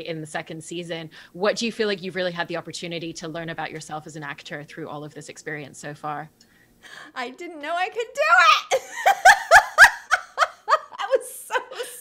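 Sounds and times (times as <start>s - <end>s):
women laughing: 8.7s - 12.0s.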